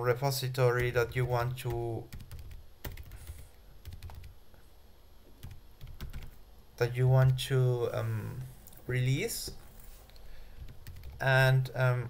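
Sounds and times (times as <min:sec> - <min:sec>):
computer keyboard keystrokes: 0:00.8 - 0:01.3, 0:02.1 - 0:04.3, 0:05.4 - 0:06.4, 0:10.6 - 0:11.2.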